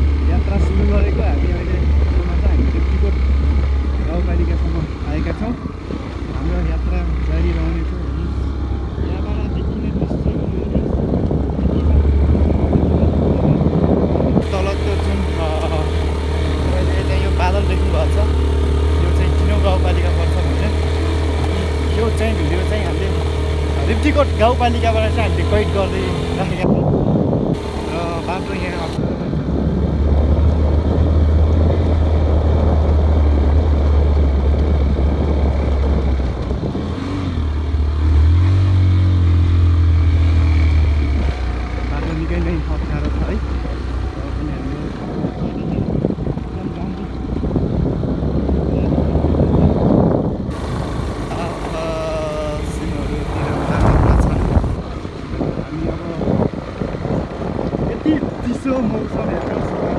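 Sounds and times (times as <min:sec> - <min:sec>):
motorcycle engine running: 0:00.0 - 0:59.9
wind on microphone: 0:08.0 - 0:19.7, 0:23.0 - 0:59.9.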